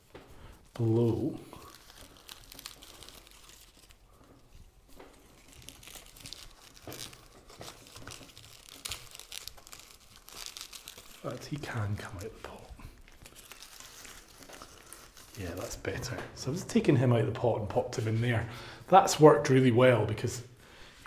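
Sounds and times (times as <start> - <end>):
crinkling and rustling of plant: 0.0 - 18.4.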